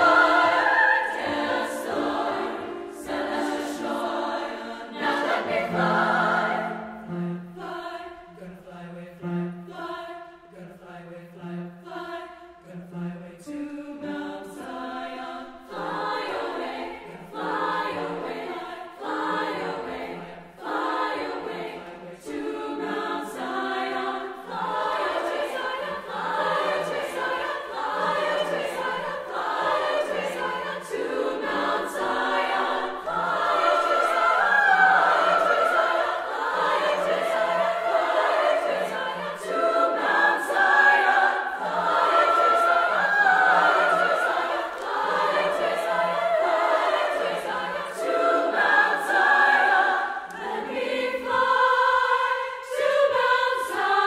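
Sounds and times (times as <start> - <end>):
women's choir singing: 0.0 - 54.0.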